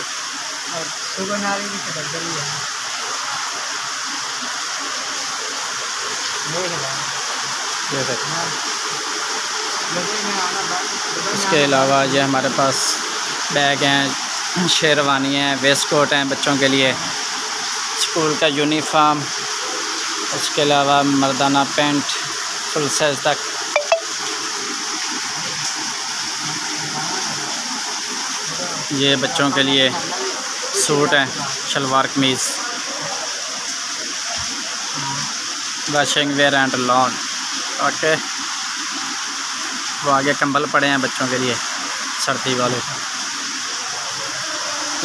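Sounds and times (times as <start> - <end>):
heavy rain downpour: 0.0 - 45.0.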